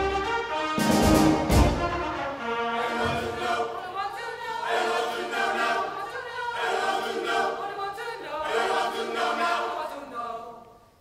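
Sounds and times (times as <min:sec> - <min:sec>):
choir singing sustained chords: 0:02.4 - 0:10.7.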